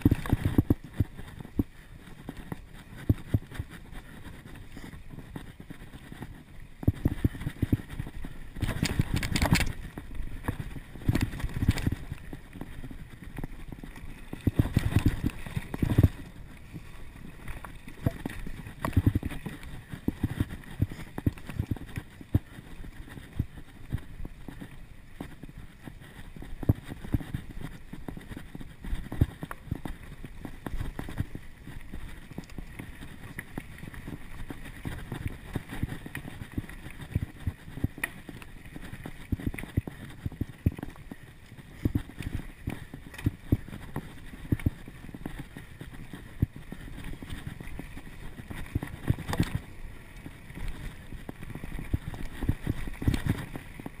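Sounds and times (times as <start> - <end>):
bike tyres rumbling on dirt: 0.0 - 54.0.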